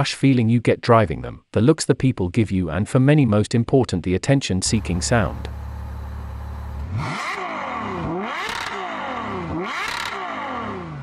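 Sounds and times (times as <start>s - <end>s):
car engine idling and revving: 4.7s - 11.0s.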